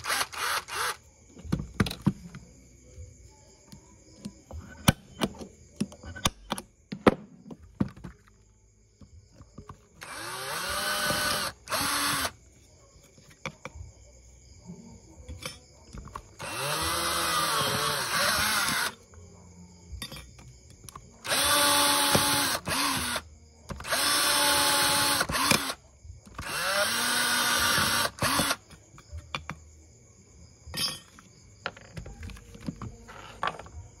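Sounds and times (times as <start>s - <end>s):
cordless drill motor whine: 0.0s - 1.1s, 10.0s - 12.4s, 16.4s - 19.0s, 21.2s - 23.2s, 23.8s - 25.8s, 26.4s - 28.6s.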